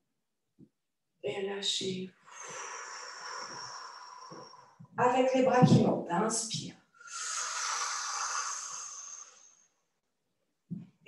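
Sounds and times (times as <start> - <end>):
person breathing in deeply: 2.2 - 4.9, 7.0 - 9.8.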